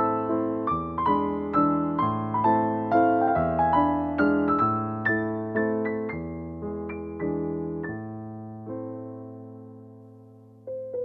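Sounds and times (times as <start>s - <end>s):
background piano music: 0.0s - 11.0s.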